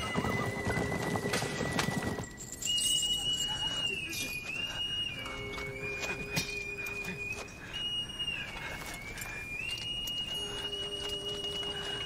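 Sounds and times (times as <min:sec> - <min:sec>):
horses hoofbeats: 0:00.0 - 0:03.4.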